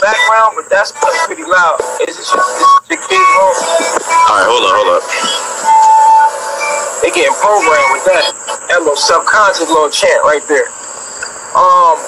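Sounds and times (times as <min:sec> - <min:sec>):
recorded chant playing: 0:03.2 - 0:09.7.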